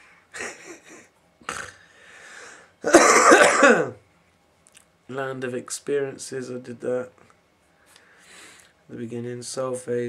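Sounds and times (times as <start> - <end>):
man clearing his throat: 0.4 - 1.8, 2.8 - 4.0
man coughing: 0.4 - 1.8, 2.8 - 4.0.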